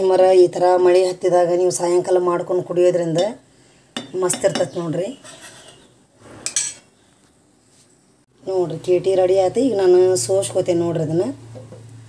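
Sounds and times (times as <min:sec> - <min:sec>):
faint kitchen noise: 0:00.0 - 0:12.0.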